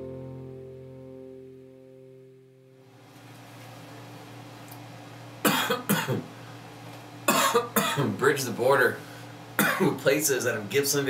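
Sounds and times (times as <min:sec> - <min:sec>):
man coughing: 0:05.4 - 0:06.3, 0:07.3 - 0:08.2, 0:09.6 - 0:10.0.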